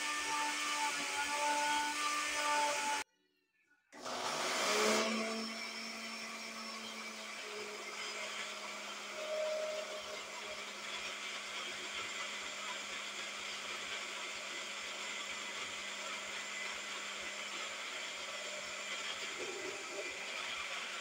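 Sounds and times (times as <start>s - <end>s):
blender motor whirring: 0.0s - 3.0s, 4.0s - 21.0s.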